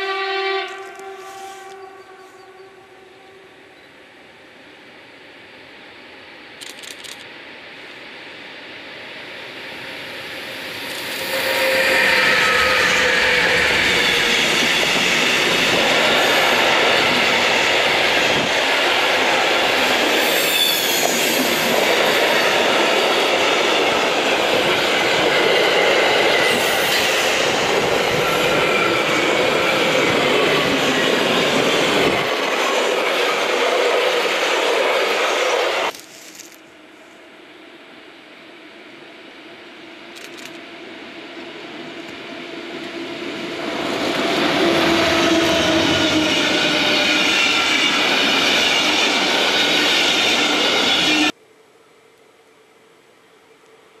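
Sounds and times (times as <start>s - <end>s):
train wheels rumbling and rattling: 10.0s - 36.6s
wheels squealing: 10.2s - 17.6s.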